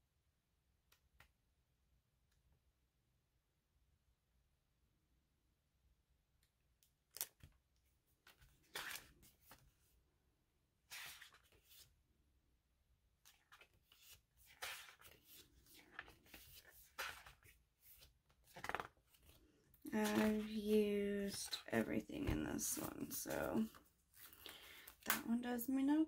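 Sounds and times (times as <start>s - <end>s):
paper pages flipping and rustling: 8.2s - 9.9s, 10.9s - 11.9s, 13.3s - 25.3s.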